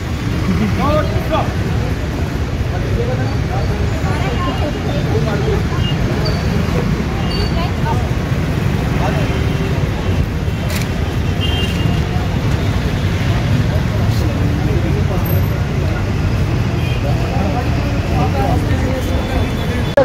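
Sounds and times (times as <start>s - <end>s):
road traffic passing: 0.0s - 20.0s.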